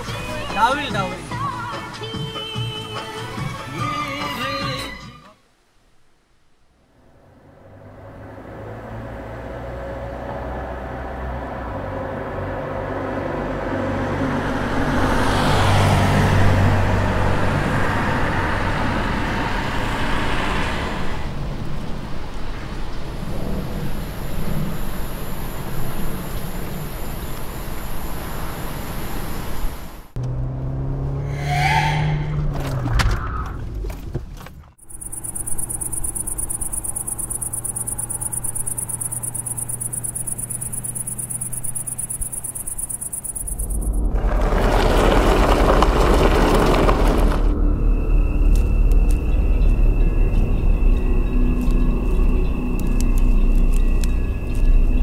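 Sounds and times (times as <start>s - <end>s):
car passing by: 7.0s - 33.0s, 35.0s - 51.3s
crickets chirping: 22.7s - 30.0s, 34.8s - 55.0s.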